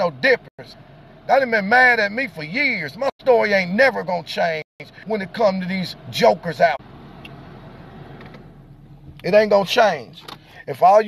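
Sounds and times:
car interior hum and hiss: 0.0s - 11.0s.

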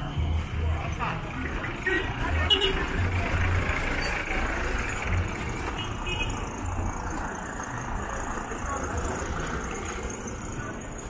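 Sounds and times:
steady urban din: 0.0s - 11.0s
vehicle engines running: 0.0s - 11.0s.

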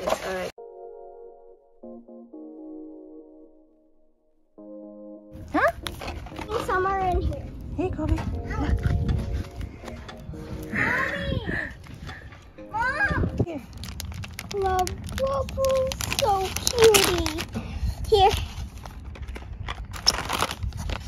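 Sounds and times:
light background music: 0.3s - 15.2s
wind rumble on microphone: 5.8s - 21.0s
children calling and exclaiming: 10.4s - 13.8s, 14.4s - 18.4s.

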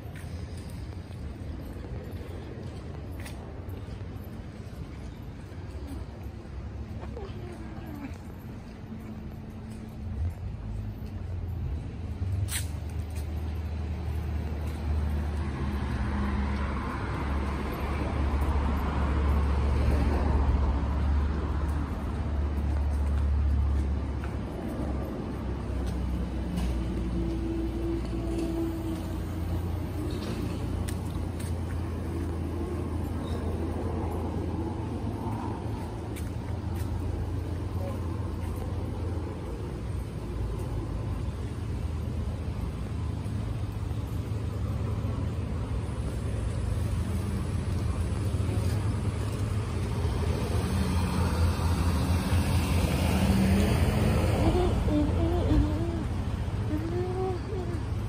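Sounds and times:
traffic engine rumble: 0.0s - 58.0s.

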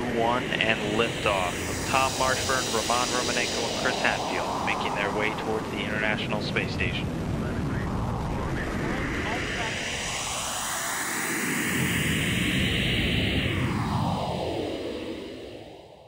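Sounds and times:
rocket launch roar: 0.0s - 15.9s.

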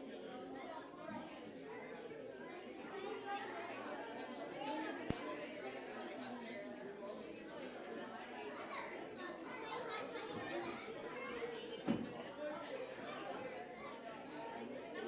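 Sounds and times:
crowd chatting in a large hall: 0.0s - 15.0s.

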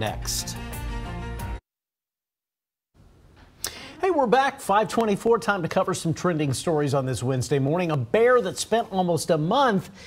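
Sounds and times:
faint studio room noise: 3.0s - 10.0s.

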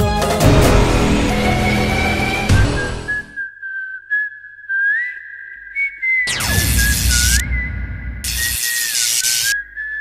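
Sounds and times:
person whistling a tune: 1.7s - 7.8s, 9.5s - 10.0s.

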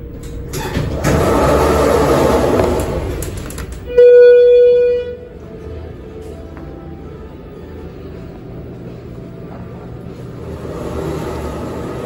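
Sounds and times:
elevator door opening: 0.0s - 5.4s
loud electronic tone: 3.9s - 5.4s.

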